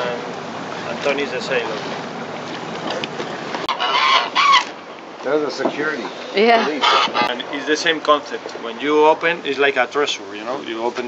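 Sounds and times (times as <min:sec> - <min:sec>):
wind and boat noise: 0:00.0 - 0:11.0
geese honking: 0:03.7 - 0:04.8, 0:06.4 - 0:07.3.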